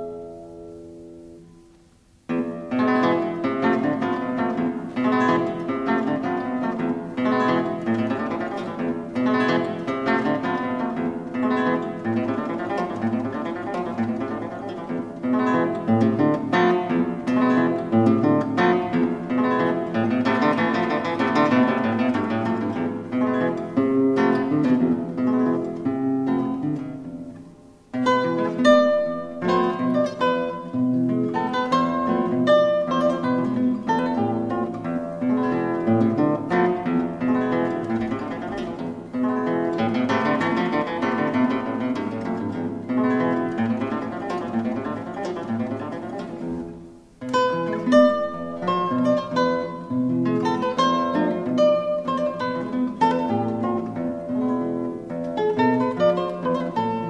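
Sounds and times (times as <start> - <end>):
acoustic guitar plucked melody: 0.0 - 57.0.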